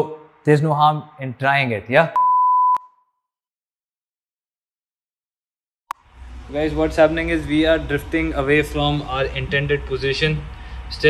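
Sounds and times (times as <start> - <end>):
electronic beep: 2.2 - 3.0.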